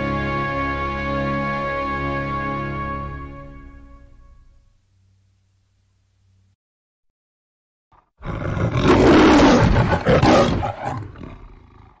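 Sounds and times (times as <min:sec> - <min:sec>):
lion roaring: 0:08.0 - 0:12.0.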